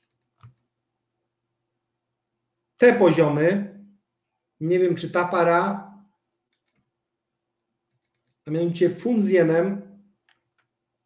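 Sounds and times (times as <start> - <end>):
faint computer mouse clicks: 0.0 - 0.7, 6.5 - 6.9, 7.9 - 8.4.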